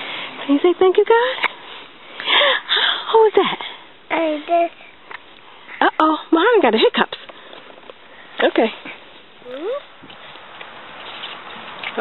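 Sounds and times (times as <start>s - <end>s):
toddler squeaking: 9.4s - 9.9s.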